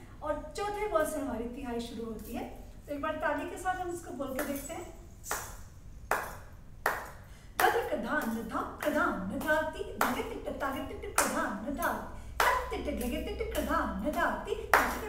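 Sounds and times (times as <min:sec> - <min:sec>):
woman reciting drum syllables: 0:00.0 - 0:05.0, 0:07.3 - 0:15.0
hand claps: 0:05.2 - 0:10.3, 0:11.2 - 0:11.4, 0:12.4 - 0:15.0.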